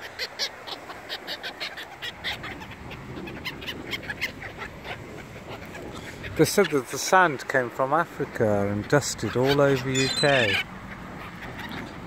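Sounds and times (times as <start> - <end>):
gulls squawking: 0.0 - 12.0.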